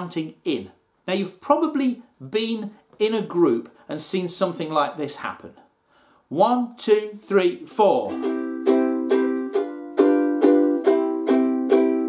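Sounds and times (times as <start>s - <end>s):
ukulele strumming: 7.9s - 12.0s.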